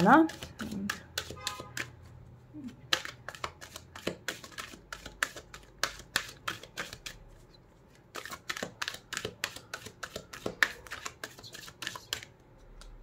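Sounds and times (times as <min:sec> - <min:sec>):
cards being shuffled: 0:02.6 - 0:13.0.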